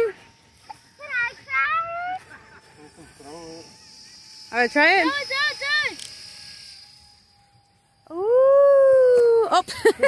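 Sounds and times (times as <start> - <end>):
child calling: 1.0 - 2.4.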